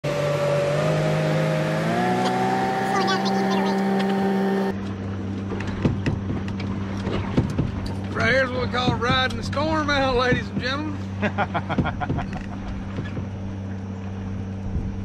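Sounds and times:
outboard motor running: 0.0 - 15.0.

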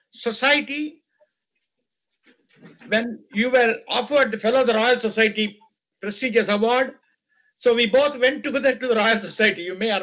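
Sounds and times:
man speaking: 0.1 - 1.1, 2.8 - 10.0
faint breath: 7.2 - 7.6.

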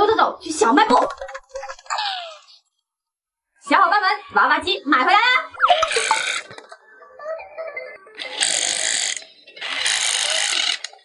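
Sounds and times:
toy claw machine motor whirring: 8.2 - 11.0.

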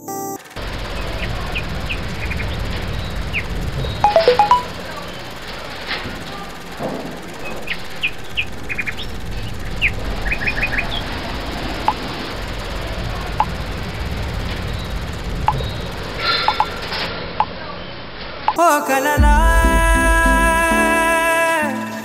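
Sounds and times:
birds chirping: 0.7 - 17.1
steady low rumble: 4.6 - 17.0.

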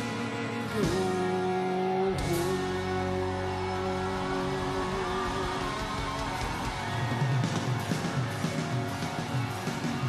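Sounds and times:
crowd cheering: 0.0 - 10.0
rock band holding a chord: 0.0 - 10.0.

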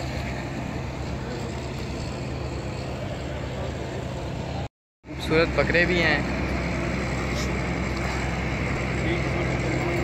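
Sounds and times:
constant even noise: 0.0 - 10.0
low mechanical hum: 0.0 - 10.0.

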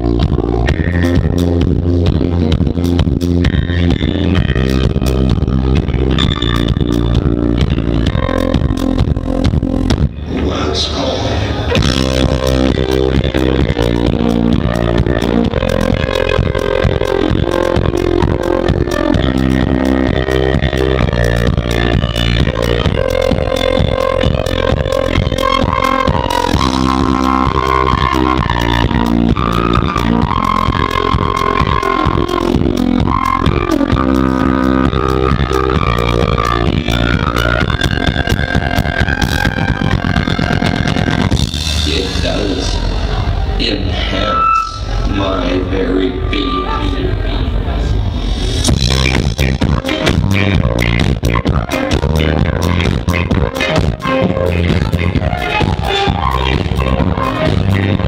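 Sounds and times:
rock band guitar and drums: 0.0 - 58.0
flute melody: 11.7 - 41.5, 43.0 - 47.6, 48.8 - 58.0.

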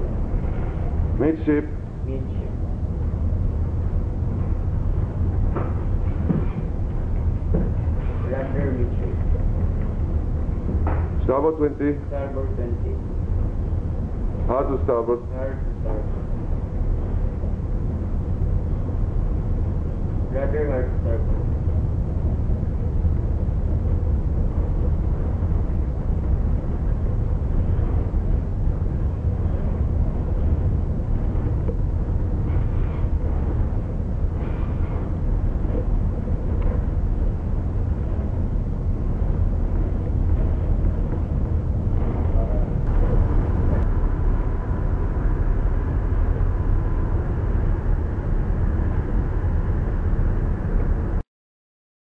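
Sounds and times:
faint steady hum: 0.0 - 51.2
faint steady whine: 0.0 - 51.2
low ship engine rumble: 0.0 - 51.2.

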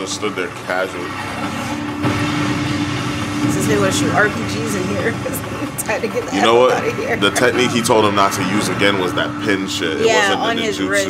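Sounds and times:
humming drone: 0.0 - 11.0
rumbling engine-like noise: 0.0 - 11.0.

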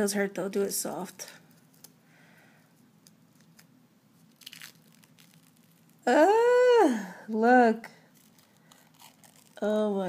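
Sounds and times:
clay mask crinkling: 1.2 - 6.1, 8.0 - 10.0
woman's drawn-out vocal exclamation: 6.1 - 7.4.

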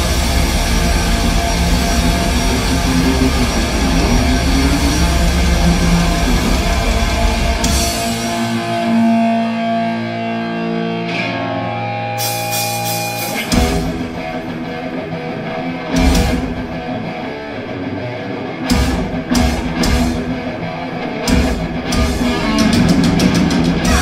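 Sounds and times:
cymbal crashes: 0.0 - 9.3, 12.2 - 14.5
thrash metal band playing: 0.0 - 24.0.

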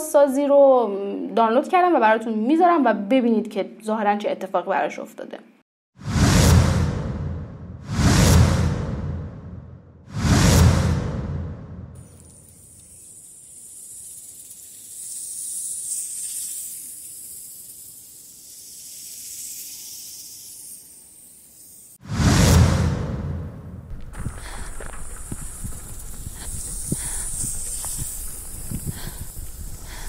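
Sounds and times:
whoosh sound effect: 6.0 - 12.0, 22.0 - 23.9.

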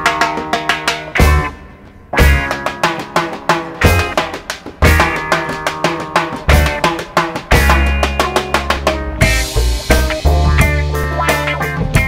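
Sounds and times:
song with drum beat: 0.0 - 12.0.

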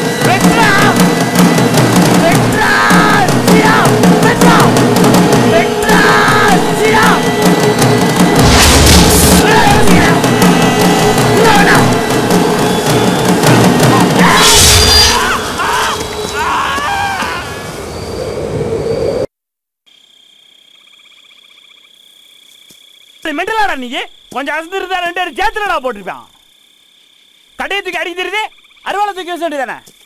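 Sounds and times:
dramatic orchestral score: 0.0 - 18.0
crickets chirping: 0.0 - 19.3, 19.9 - 30.0
loud rushing noise with hum: 0.3 - 16.3
mass of voices: 2.2 - 7.4, 9.3 - 14.6.

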